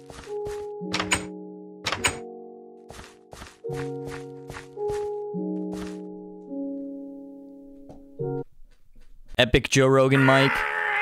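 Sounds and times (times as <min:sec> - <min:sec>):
background music with sustained notes: 0:00.0 - 0:09.1.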